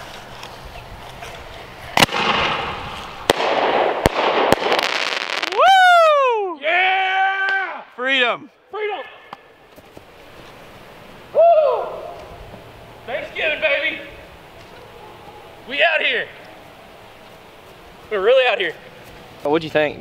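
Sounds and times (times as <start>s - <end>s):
firework hissing and crackling: 0.0s - 5.8s, 9.9s - 11.4s
people yelling and whooping: 5.4s - 7.9s, 11.2s - 13.1s, 14.5s - 17.1s.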